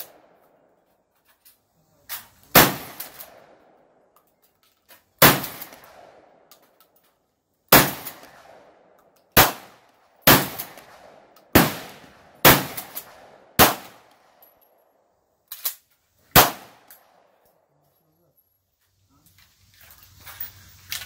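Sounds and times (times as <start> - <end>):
shotgun blasts with echo: 2.5 - 3.8, 5.2 - 6.5, 7.7 - 14.2, 16.3 - 17.3.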